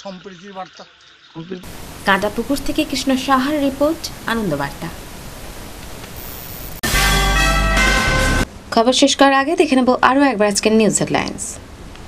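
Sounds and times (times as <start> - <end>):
steady background hiss: 0.0 - 6.8.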